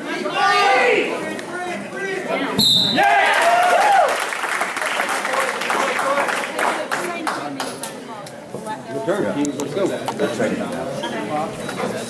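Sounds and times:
referee's whistle blast: 2.6s - 3.0s
spectators shouting: 2.9s - 4.1s.

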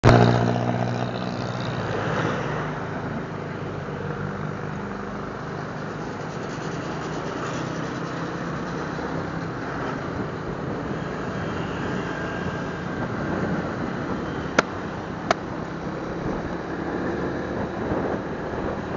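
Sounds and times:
wind and road noise: 0.0s - 18.9s.

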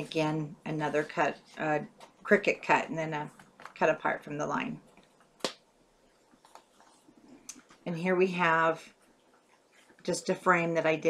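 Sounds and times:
faint paper rustling: 6.1s - 8.0s, 8.9s - 10.2s.

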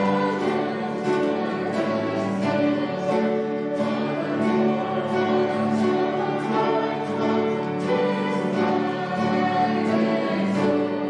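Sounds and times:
acoustic guitar: 0.0s - 11.0s
congregation singing a hymn: 0.0s - 11.0s.

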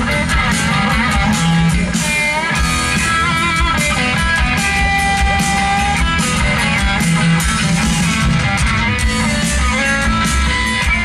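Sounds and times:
drums and bass: 0.0s - 11.0s
electric guitar lead: 0.0s - 11.0s.

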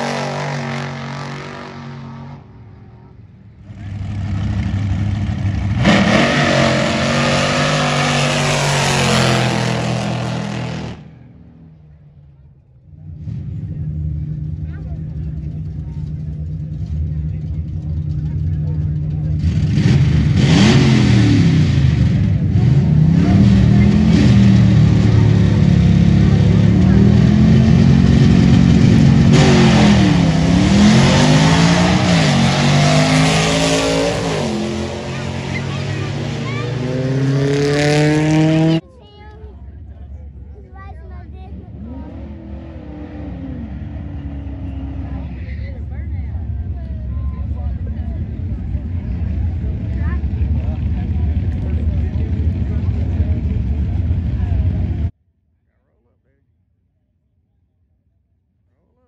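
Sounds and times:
drag car engine accelerating: 0.0s - 55.1s
faint voices: 11.7s - 19.8s, 22.2s - 37.6s, 38.7s - 55.1s.

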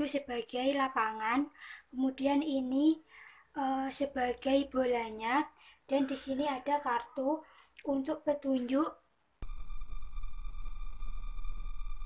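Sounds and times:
low hum: 9.4s - 12.0s
steady electronic tone: 9.4s - 12.0s.

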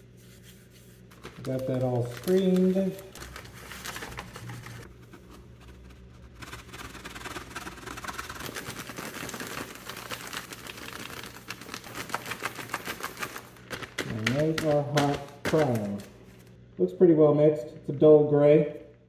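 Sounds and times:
paper and plastic bag crinkling: 1.1s - 16.6s
dense rapid crackle: 5.9s - 15.8s.

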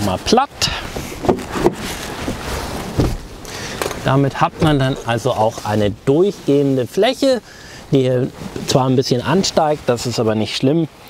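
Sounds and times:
outdoor background noise: 0.0s - 11.0s
seat backrest thump: 1.2s - 4.0s, 4.6s - 5.1s.

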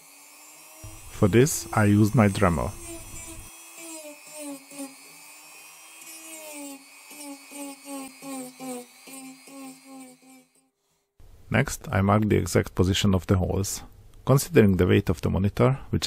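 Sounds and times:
rotary tool motor whine: 0.0s - 10.7s.

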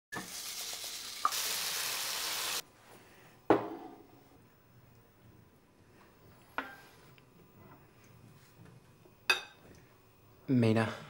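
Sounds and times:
food sizzling in a frying pan: 0.1s - 2.6s
plate set down on a table: 3.5s - 4.1s.

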